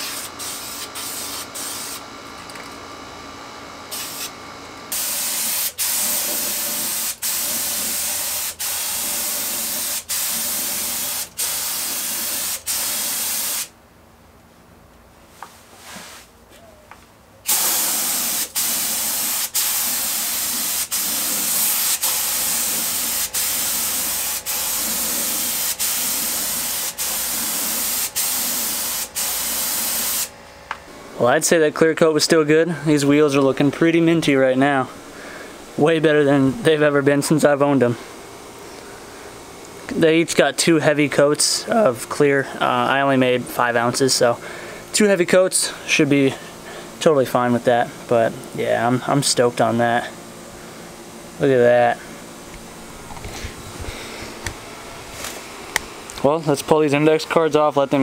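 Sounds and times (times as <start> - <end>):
spray gun hissing: 0.0 - 2.0, 3.9 - 4.3, 4.9 - 13.7, 17.5 - 30.3.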